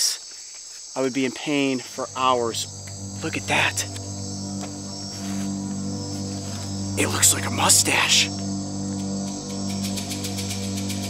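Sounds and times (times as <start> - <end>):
crickets trilling: 0.0 - 11.0
low background music drone: 1.7 - 11.0.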